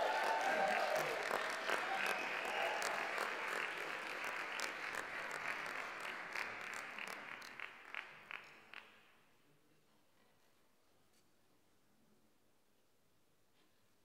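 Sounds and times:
audience cheering: 0:00.0 - 0:05.6
audience applauding: 0:00.0 - 0:09.0.

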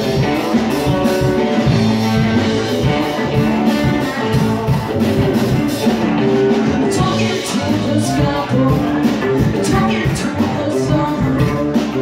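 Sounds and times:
drum kit beat: 0:00.0 - 0:12.0
live rock band playing: 0:00.0 - 0:12.0.

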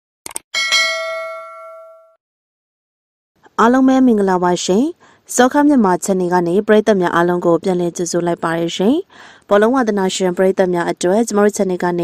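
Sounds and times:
bell-like ding: 0:00.6 - 0:02.2.

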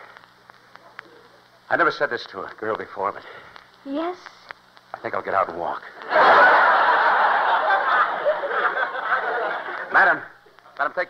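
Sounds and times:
studio audience laughing: 0:06.0 - 0:10.0.

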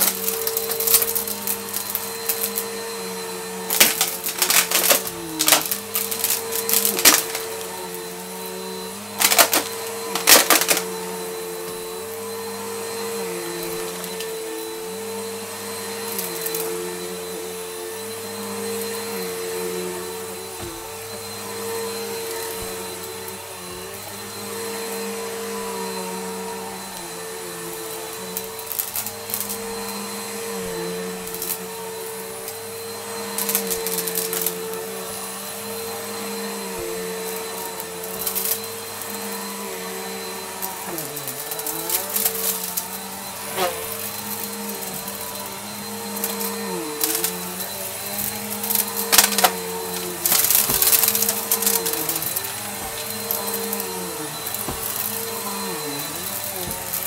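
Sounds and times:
vacuum cleaner motor whine: 0:00.0 - 0:57.0
debris crunching in vacuum: 0:03.7 - 0:08.1, 0:37.3 - 0:57.0.

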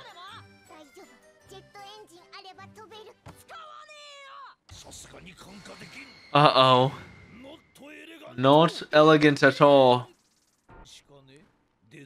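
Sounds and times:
light tinkling background music: 0:00.0 - 0:02.4, 0:05.2 - 0:08.3.

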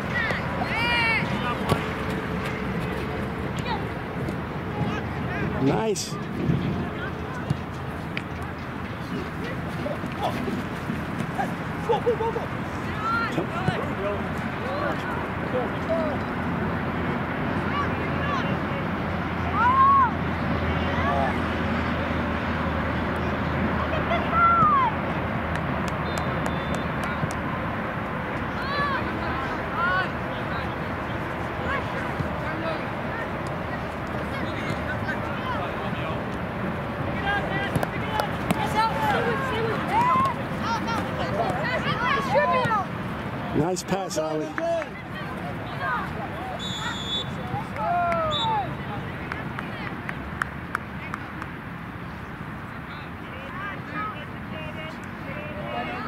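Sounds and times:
outdoor background noise: 0:00.0 - 0:56.0
distant shouted calls: 0:44.4 - 0:49.2.

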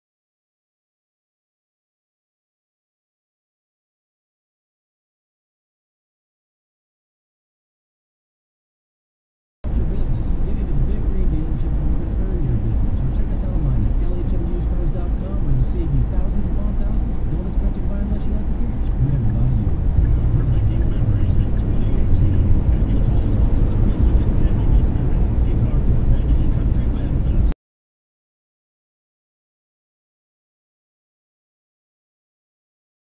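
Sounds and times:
road and engine rumble in car: 0:09.6 - 0:27.6
indistinct voice: 0:09.7 - 0:27.6.

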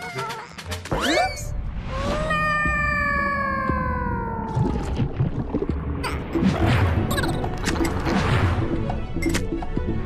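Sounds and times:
cartoon character crying ohhh: 0:00.0 - 0:00.7, 0:02.0 - 0:04.5.

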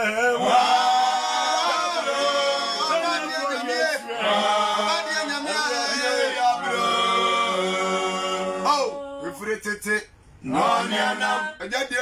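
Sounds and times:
group singing worship song: 0:00.0 - 0:09.4, 0:10.4 - 0:11.7.

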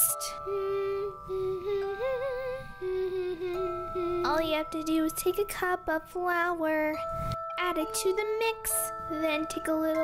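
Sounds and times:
held chords: 0:00.0 - 0:10.0
slow wordless melody: 0:00.0 - 0:10.0.

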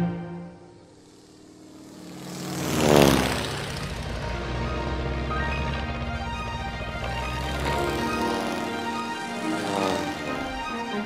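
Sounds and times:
propeller plane flying past: 0:00.0 - 0:11.0.

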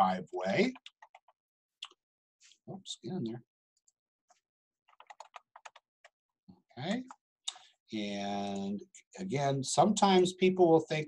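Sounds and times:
computer keyboard typing: 0:00.5 - 0:01.4, 0:04.9 - 0:06.2.

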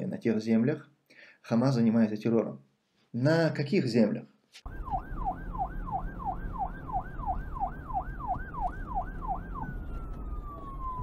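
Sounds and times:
siren yelping: 0:04.7 - 0:11.0.

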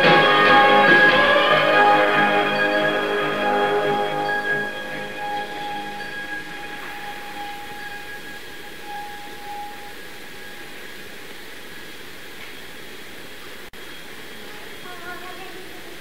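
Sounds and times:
held notes of stage music: 0:00.0 - 0:11.2
room noise hiss: 0:00.0 - 0:16.0.

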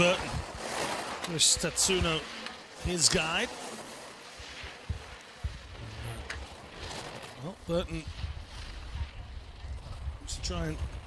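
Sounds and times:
skis scraping on snow: 0:00.0 - 0:11.0.

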